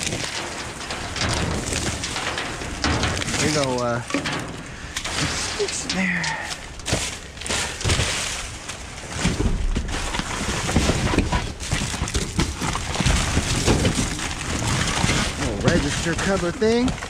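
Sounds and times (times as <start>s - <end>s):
plastic bags and cardboard rustling: 0.0s - 17.0s.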